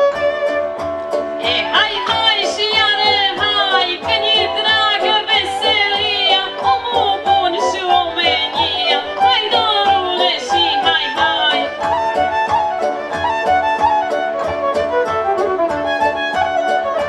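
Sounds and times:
folk band with fiddle and bass: 0.0s - 17.0s
woman singing into microphone: 1.4s - 12.0s.

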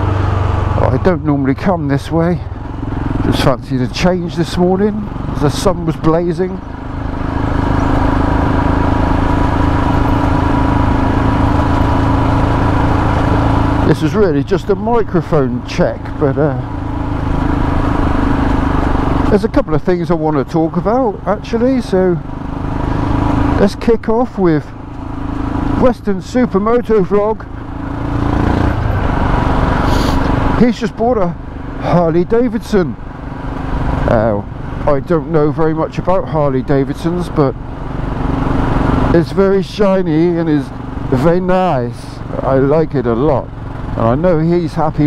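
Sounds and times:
motorcycle engine running: 0.0s - 45.0s
road noise: 0.0s - 45.0s.

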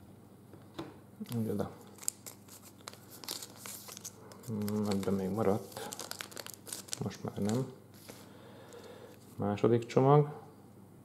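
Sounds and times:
foil wrapper crinkling: 1.3s - 9.3s.

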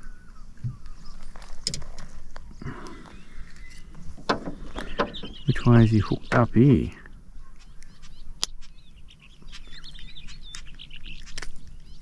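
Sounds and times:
low steady background noise: 0.0s - 12.0s
wild birds chirping: 0.0s - 12.0s.

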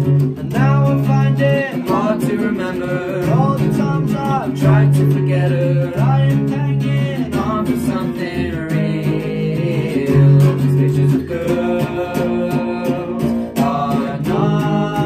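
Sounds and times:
strummed guitar: 0.0s - 15.0s
two voices singing: 0.0s - 15.0s.

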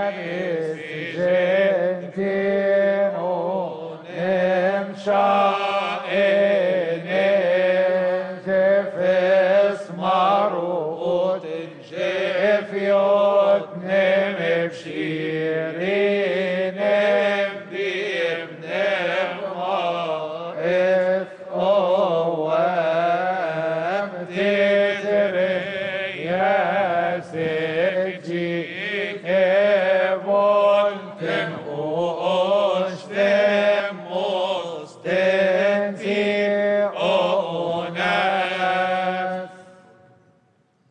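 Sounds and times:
male choir chanting a hymn: 0.0s - 40.1s.

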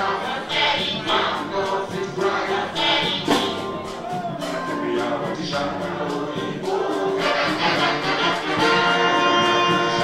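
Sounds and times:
afrobeat band playing live: 0.0s - 10.0s
voices singing: 0.0s - 10.0s.

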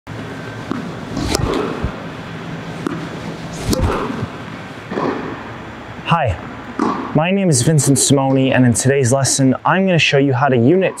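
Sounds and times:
steady low hum: 0.1s - 11.0s
racket hitting tennis ball: 0.7s - 2.1s, 2.8s - 5.4s.

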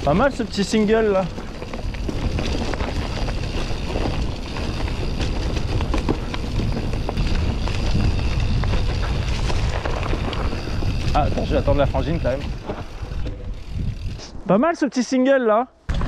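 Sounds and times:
bike rattles and clicks: 0.0s - 14.3s
wind rumble on microphone: 1.2s - 14.4s.

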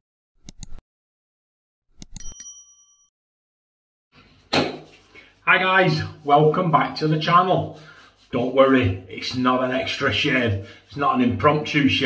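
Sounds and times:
mouse clicks: 0.4s - 0.8s
bright bell ding: 2.1s - 3.1s.

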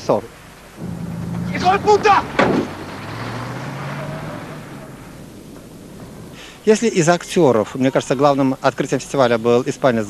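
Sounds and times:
vehicle engine passing: 0.8s - 7.4s
man's voice: 1.5s - 2.3s
sharp knock: 2.4s - 2.8s.

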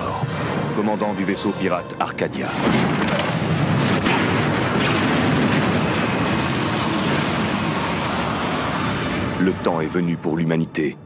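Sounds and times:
explosion blast rumble: 2.5s - 10.0s.

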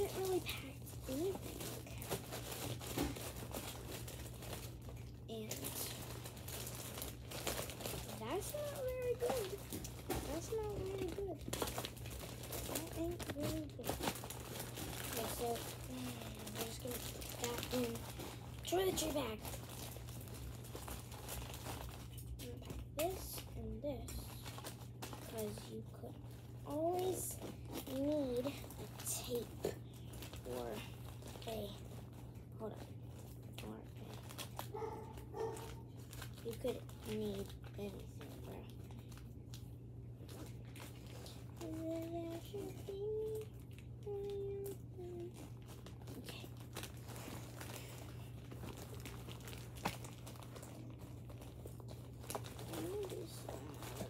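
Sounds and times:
clothes and bags rustling: 0.0s - 39.6s, 40.2s - 54.0s
steady low hum: 0.0s - 54.0s.

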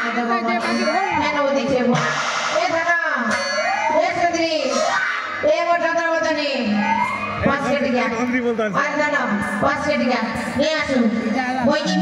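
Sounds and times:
music: 0.0s - 2.8s
loud voice over loudspeakers: 7.3s - 10.0s, 11.0s - 12.0s.

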